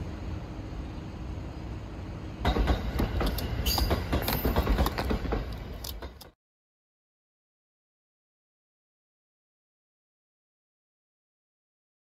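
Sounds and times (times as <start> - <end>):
electric train on tracks: 0.0 - 6.4
wheels squealing: 2.5 - 6.1.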